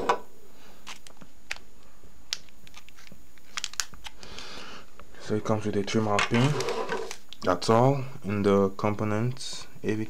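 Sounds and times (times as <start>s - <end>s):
plastic packaging crinkling: 2.3s - 4.4s.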